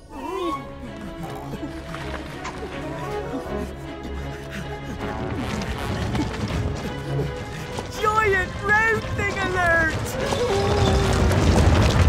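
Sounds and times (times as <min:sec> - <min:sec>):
background music: 0:00.0 - 0:12.0
stone boulder rolling and rumbling: 0:05.0 - 0:12.0.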